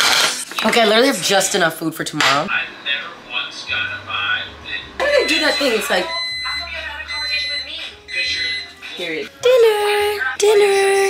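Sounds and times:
woman talking: 0.5 - 2.5, 5.0 - 7.9, 8.9 - 9.4
microwave oven beeping: 2.1 - 9.2.

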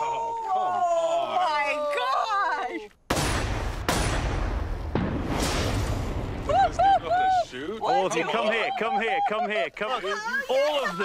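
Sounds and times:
revolver gunshot crack: 3.1 - 6.4
onlookers whooping: 6.4 - 7.5.

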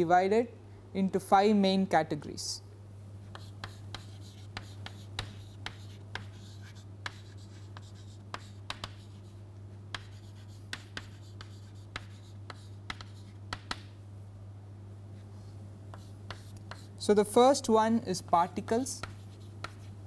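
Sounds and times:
steady low hum: 0.0 - 20.0
chalk writing on chalkboard: 3.3 - 13.8, 15.9 - 17.0, 18.9 - 20.0.

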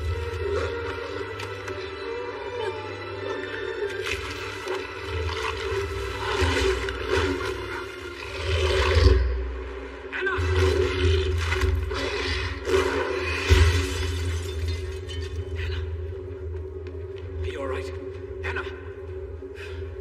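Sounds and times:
dramatic film music: 0.0 - 20.0
creature growls and roars: 6.0 - 9.4.

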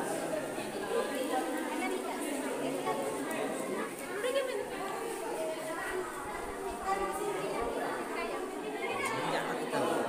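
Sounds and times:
overlapping background chatter: 0.0 - 10.0.

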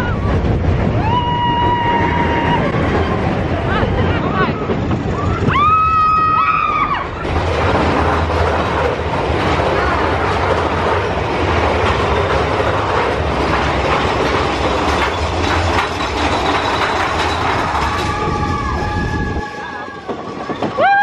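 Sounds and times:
riders whooping: 0.0 - 7.3, 16.7 - 21.0
roller coaster rattling on track: 0.0 - 21.0.

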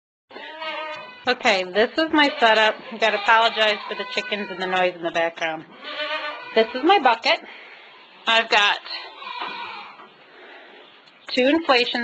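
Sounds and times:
farm animals calling: 0.3 - 11.8.

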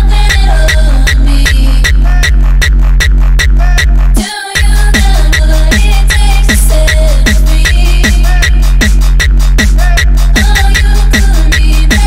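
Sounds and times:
hard kick drum: 0.0 - 12.0
heavy bass: 0.0 - 12.0.

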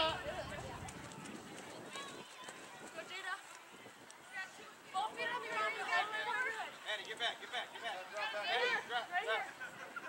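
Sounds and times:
light outdoor background noise: 0.0 - 10.0.

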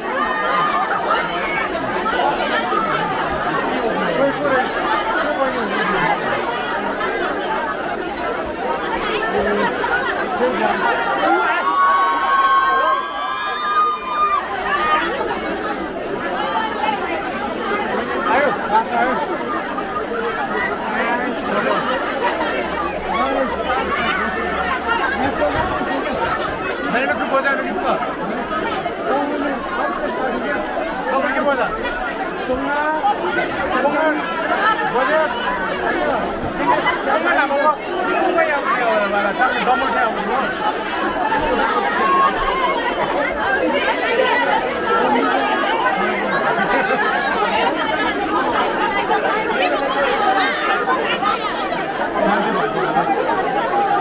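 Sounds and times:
crowd babble of voices: 0.0 - 54.0.

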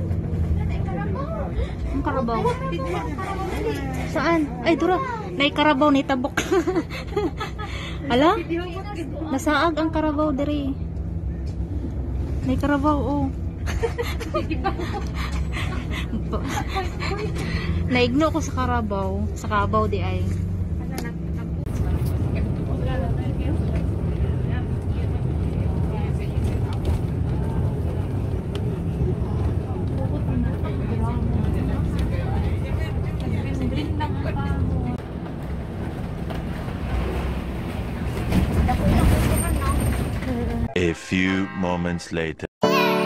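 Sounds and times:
faint passenger voices: 0.0 - 36.7, 38.3 - 42.9
bus engine and road rumble: 0.0 - 42.2.

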